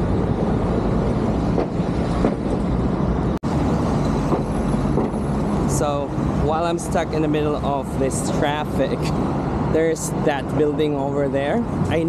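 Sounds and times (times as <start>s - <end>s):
heavy road traffic rumble: 0.0s - 12.0s.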